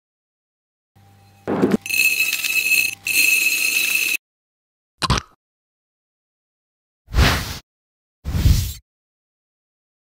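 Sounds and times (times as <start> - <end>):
bowl ringing tone: 1.2 - 4.2.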